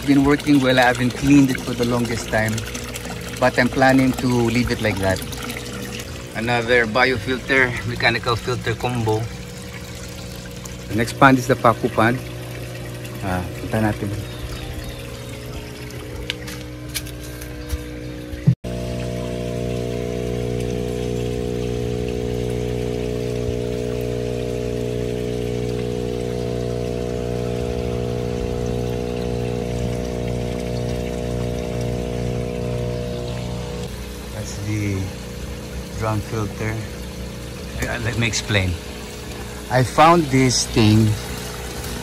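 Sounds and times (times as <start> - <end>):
steady hum: 0.0 - 42.0
water trickling into pond: 0.0 - 42.0.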